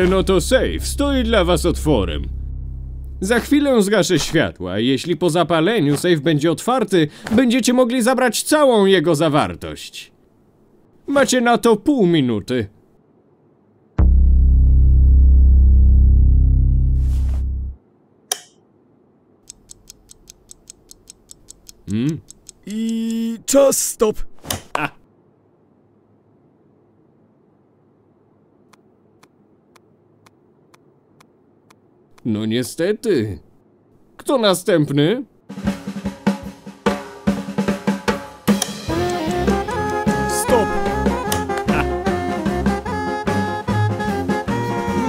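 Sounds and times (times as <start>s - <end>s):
jazzy tune: 0.0s - 3.6s, 38.8s - 45.0s
rapid clock ticking: 19.5s - 22.7s, 38.9s - 40.1s
drum beat with snare: 35.5s - 42.7s.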